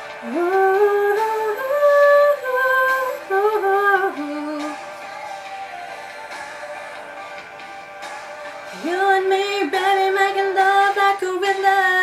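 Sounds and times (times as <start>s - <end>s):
woman singing wordless run: 0.2s - 4.8s, 8.8s - 12.0s.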